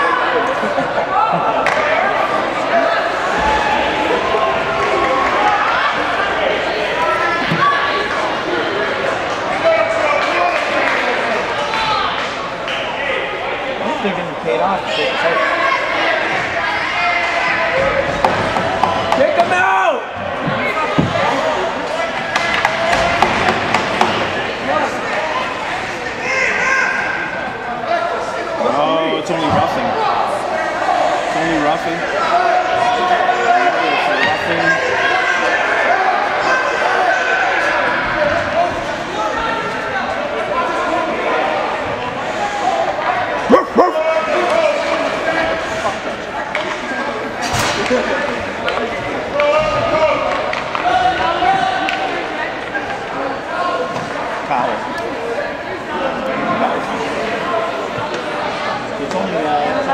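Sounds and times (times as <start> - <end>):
indistinct echoing voices: 0.0 - 59.9.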